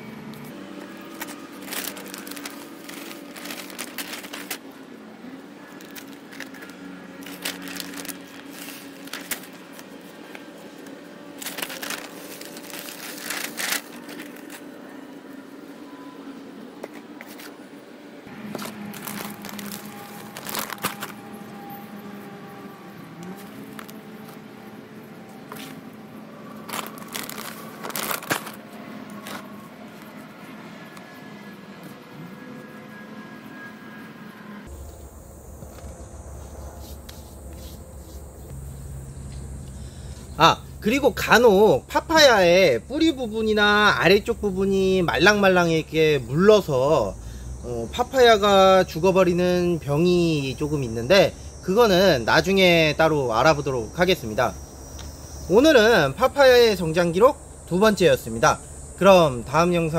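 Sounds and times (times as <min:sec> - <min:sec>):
plastic bag rustling and crinkling: 0:00.5 - 0:04.8, 0:05.7 - 0:14.7, 0:18.4 - 0:21.4, 0:23.3 - 0:24.4, 0:26.5 - 0:29.5
steady low hum: 0:34.6 - 0:46.4.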